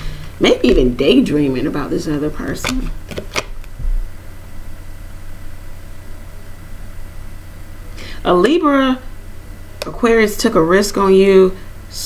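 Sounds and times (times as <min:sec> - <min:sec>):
low hum with soft hiss: 0:00.0 - 0:12.0
cards snapping and clicking: 0:02.6 - 0:03.7.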